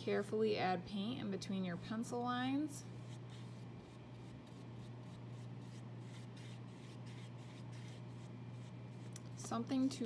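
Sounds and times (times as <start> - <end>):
low steady hum: 0.0 - 10.0
paintbrush strokes on paper: 2.8 - 9.5.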